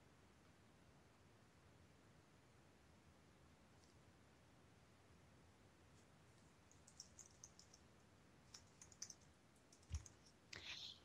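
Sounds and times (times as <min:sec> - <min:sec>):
faint clicks: 0:06.4 - 0:10.9.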